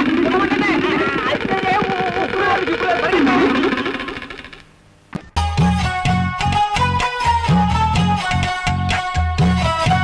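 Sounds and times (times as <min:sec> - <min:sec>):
background noise: 0:00.0 - 0:10.0.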